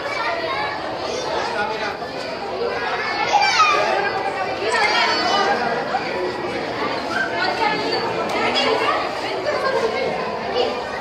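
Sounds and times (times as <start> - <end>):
crowd chatter: 0.0 - 11.0
high-pitched child voices: 2.7 - 4.1.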